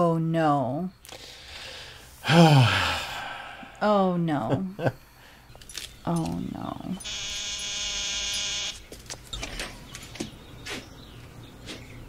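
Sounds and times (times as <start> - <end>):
electric doorbell buzzing: 7.0 - 8.9.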